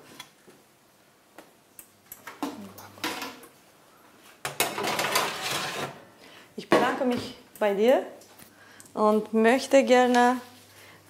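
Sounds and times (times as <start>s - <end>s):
metal tray scraping on oven rails: 4.6s - 6.0s.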